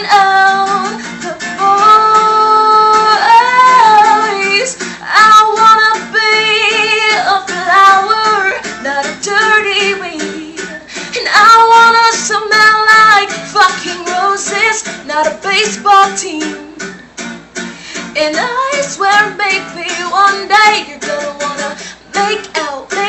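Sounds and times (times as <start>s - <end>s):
woman singing pop song: 0.0s - 17.0s, 17.9s - 23.0s
guitar accompaniment: 0.0s - 23.0s.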